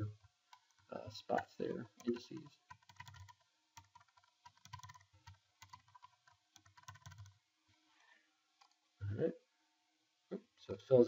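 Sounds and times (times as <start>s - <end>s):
computer keyboard typing: 0.6s - 7.4s.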